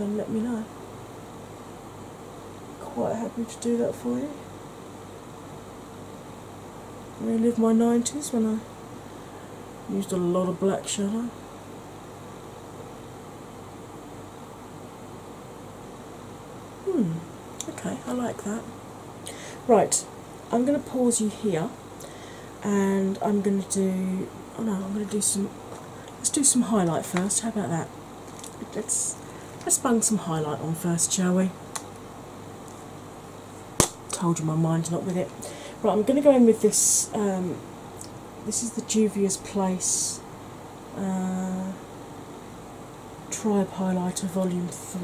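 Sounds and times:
background hiss: 0.0s - 45.0s
faint low hum: 0.0s - 45.0s.

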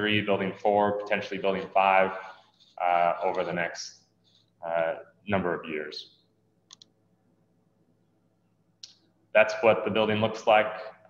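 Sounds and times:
faint clicks: 6.7s - 7.0s.

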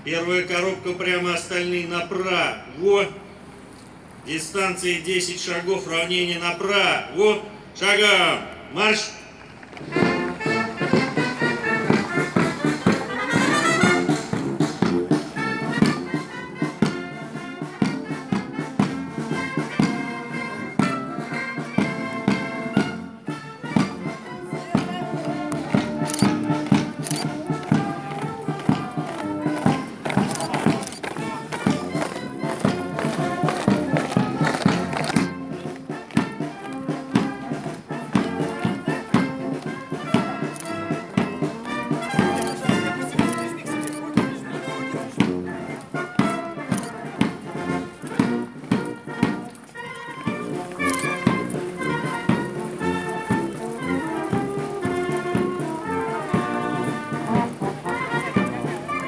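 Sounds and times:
brass band playing a march: 4.4s - 59.0s.

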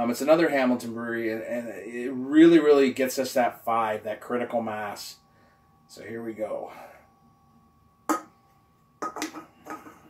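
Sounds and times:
can knocked on wooden counter: 9.0s - 9.9s.

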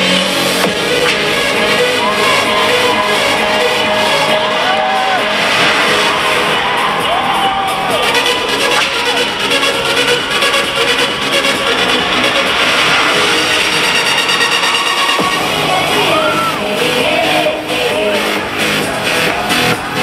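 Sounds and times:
crowd cheering: 0.0s - 20.0s
electronic dance-pop music: 0.0s - 20.0s.

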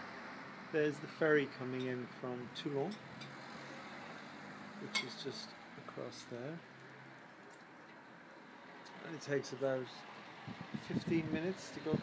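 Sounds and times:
low hum of distant traffic: 0.0s - 12.0s.

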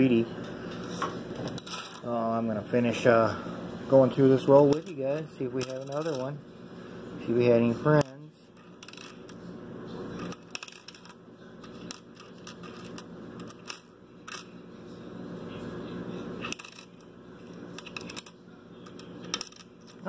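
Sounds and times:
coins clinking on wooden table: 1.4s - 2.0s, 4.6s - 6.3s, 8.6s - 9.4s, 10.2s - 14.5s, 16.4s - 17.1s, 17.7s - 20.0s.

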